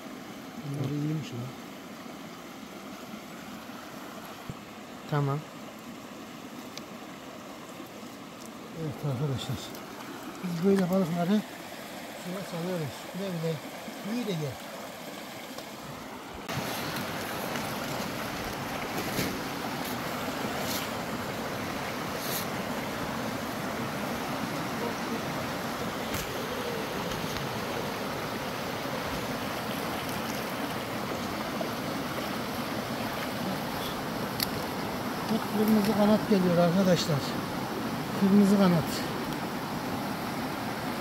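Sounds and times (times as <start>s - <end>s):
stream splashing over stones: 0.0s - 41.0s.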